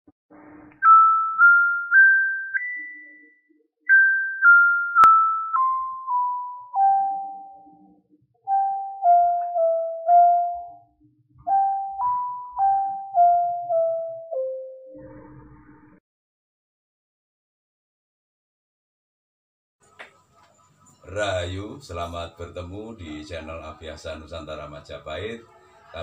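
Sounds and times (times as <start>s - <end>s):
mallet instrument melody: 8.5s - 10.8s.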